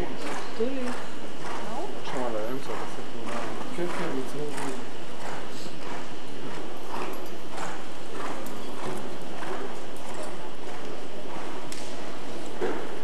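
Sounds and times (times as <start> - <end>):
horse hoofbeats trotting: 0.0 - 13.0.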